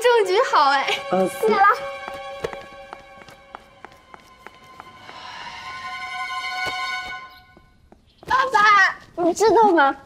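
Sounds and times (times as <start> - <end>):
soft background music: 0.0 - 7.8
hard-soled footsteps on stairs: 2.0 - 5.2.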